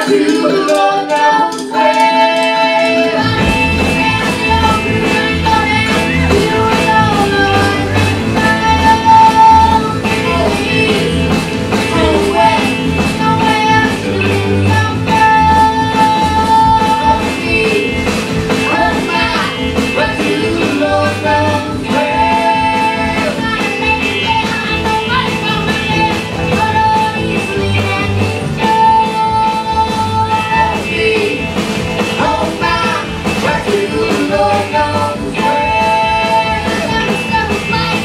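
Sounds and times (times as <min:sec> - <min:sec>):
girl singing: 0:00.0 - 0:11.2, 0:11.9 - 0:17.9
electric guitar: 0:00.0 - 0:38.0
drum beat: 0:03.2 - 0:38.0.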